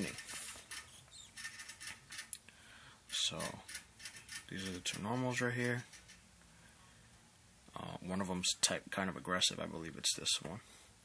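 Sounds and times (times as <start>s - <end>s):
faint rustling: 0.0s - 7.2s.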